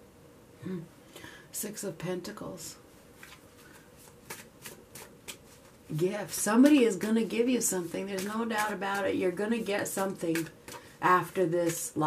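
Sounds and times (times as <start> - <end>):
cards being shuffled: 3.2 - 12.0.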